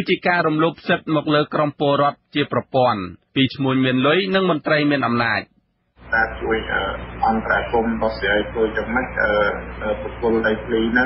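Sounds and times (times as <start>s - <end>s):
steady low hum: 5.5s - 11.0s.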